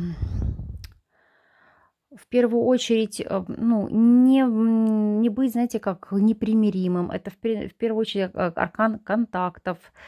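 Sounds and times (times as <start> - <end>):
low rumble: 0.0 - 0.9
woman exhaling breathily: 0.0 - 1.9.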